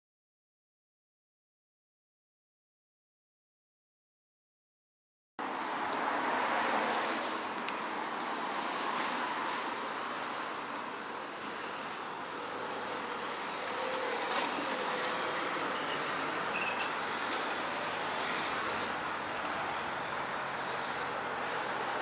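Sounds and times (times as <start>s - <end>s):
cars passing: 5.4s - 22.0s.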